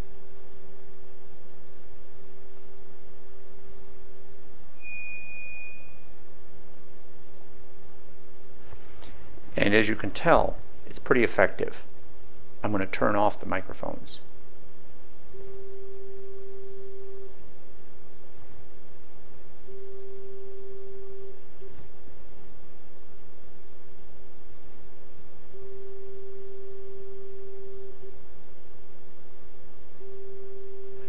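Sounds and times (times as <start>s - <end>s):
steady pure test tone: 0.0s - 31.0s.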